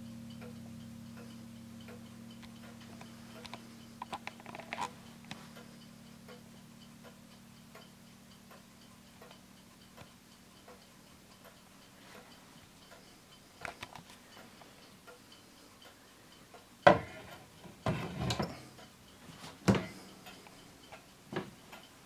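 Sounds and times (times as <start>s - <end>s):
wall clock ticking faintly: 0.0s - 22.0s.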